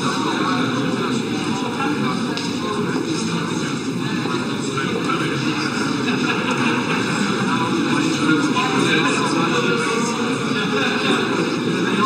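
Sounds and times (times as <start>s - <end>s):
crowd babble: 0.0s - 12.0s.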